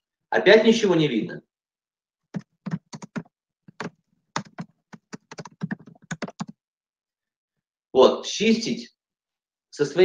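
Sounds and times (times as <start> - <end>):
typing on computer keyboard: 2.3 - 6.6.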